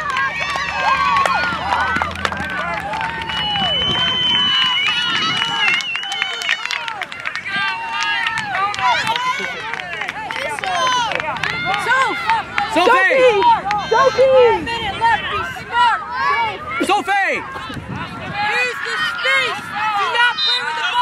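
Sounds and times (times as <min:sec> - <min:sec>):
players and spectators shouting: 0:00.0 - 0:21.0.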